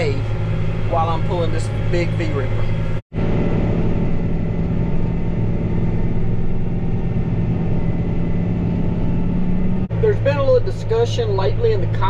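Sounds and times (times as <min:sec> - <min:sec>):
tractor diesel engine under load: 0:00.0 - 0:12.0.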